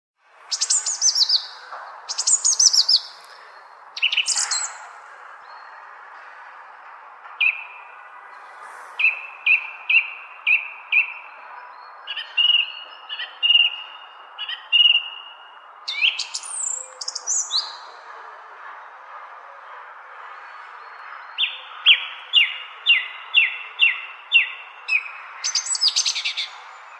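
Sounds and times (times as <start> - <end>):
songbirds singing: 0.3 - 26.9.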